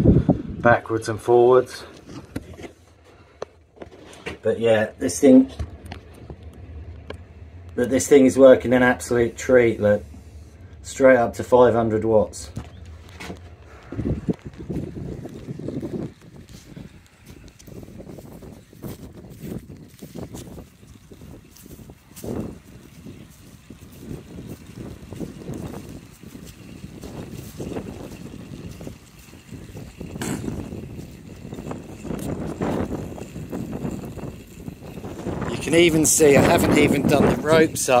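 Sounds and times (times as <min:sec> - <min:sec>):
gusty wind buffeting microphone: 0:00.0 - 0:38.0.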